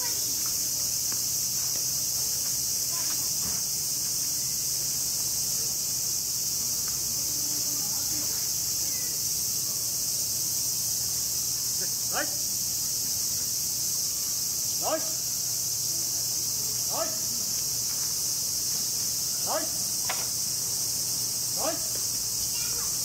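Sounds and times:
cicadas buzzing: 0.0s - 23.0s
faint distant voices: 0.0s - 23.0s.

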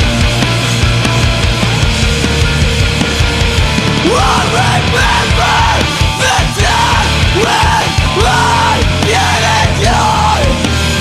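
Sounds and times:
loud post-hardcore band playing: 0.0s - 11.0s.

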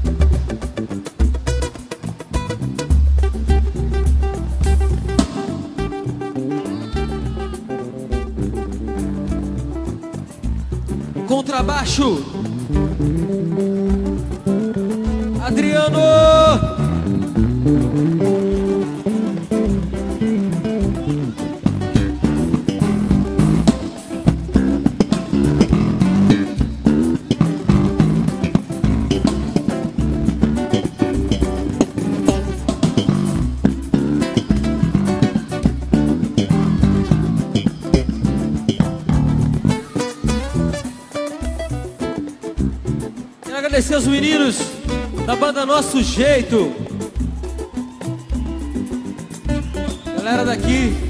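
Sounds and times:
drums: 0.0s - 51.0s
electric bass guitar solo: 0.0s - 51.0s.

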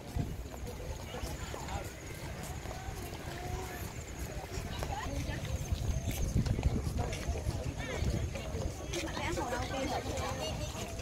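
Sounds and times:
wind rumble on microphone: 0.0s - 1.6s, 2.3s - 11.0s
faint voices: 0.0s - 11.0s
footsteps on brick: 0.0s - 11.0s.

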